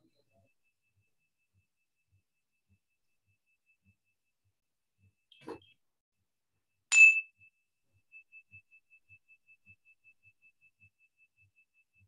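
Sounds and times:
metal chime ringing: 6.9s - 7.2s.

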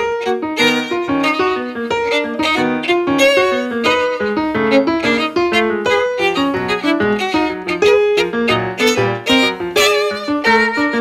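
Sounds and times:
violin and piano piece: 0.0s - 11.0s.

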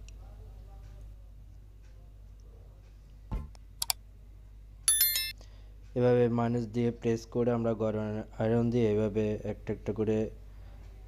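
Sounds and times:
electronic bell ding: 4.9s - 5.4s.

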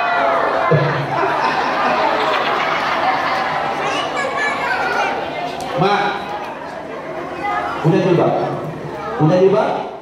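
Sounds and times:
crowd chattering: 0.0s - 10.0s
man speaking into a microphone: 9.2s - 10.0s.

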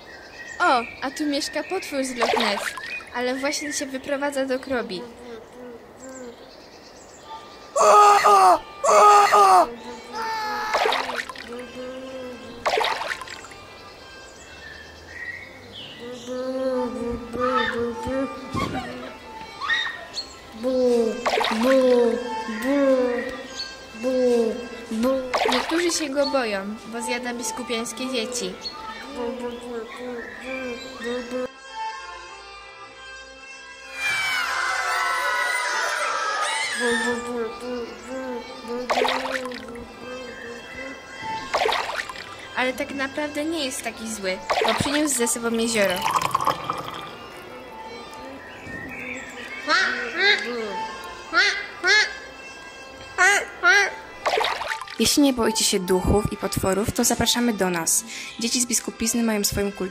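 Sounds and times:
children screaming and shouting: 7.3s - 12.6s, 15.9s - 24.7s, 33.8s - 41.6s
person making groaning dragon cries: 7.8s - 10.7s.

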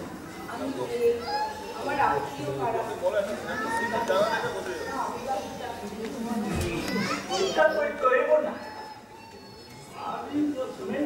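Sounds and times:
actors' voices in animated exchange: 6.4s - 9.2s.

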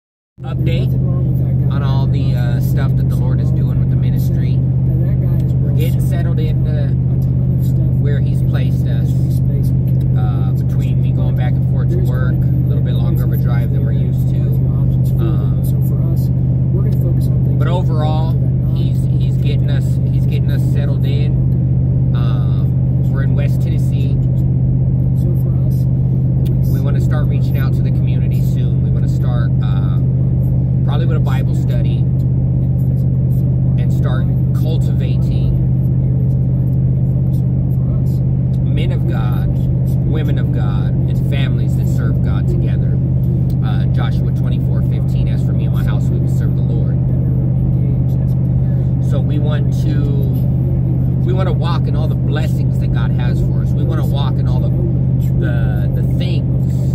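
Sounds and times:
engine and road drone in cabin: 0.4s - 56.9s
man talking quietly: 0.4s - 56.9s.

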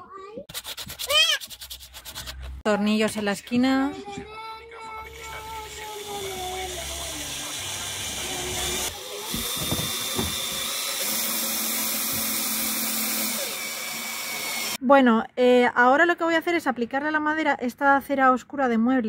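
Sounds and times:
cordless drill motor whining: 5.2s - 14.8s.

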